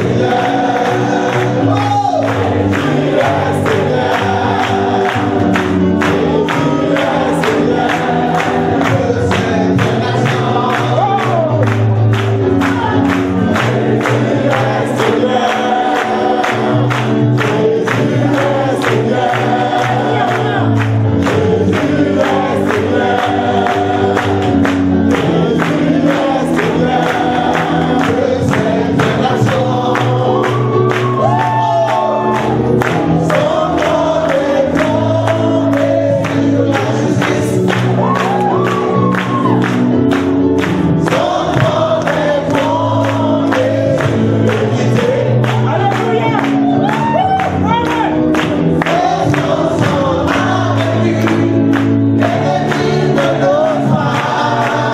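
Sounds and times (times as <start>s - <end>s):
choir singing gospel: 0.0s - 54.9s.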